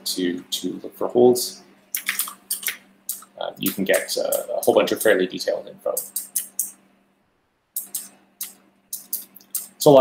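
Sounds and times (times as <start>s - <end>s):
faint steady hum: 0.0s - 10.0s
computer keyboard keys clicking: 2.0s - 5.1s.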